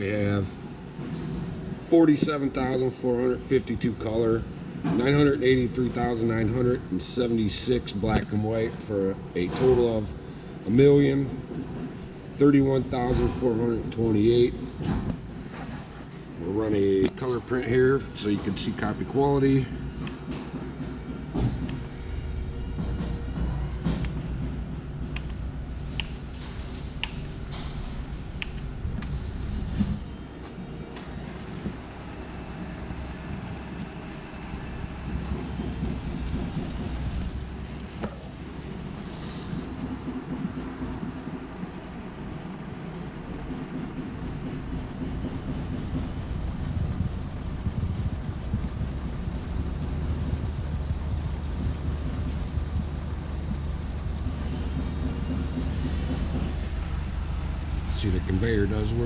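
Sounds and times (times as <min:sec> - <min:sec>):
press machine hum and whir: 0:00.0 - 0:59.0.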